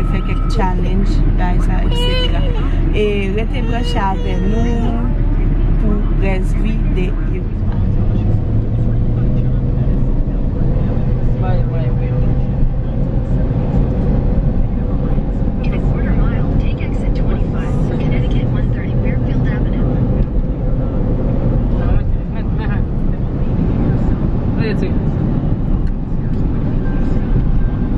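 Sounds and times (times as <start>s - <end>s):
faint voices: 0.0s - 25.0s
car engine and road noise: 0.0s - 27.9s.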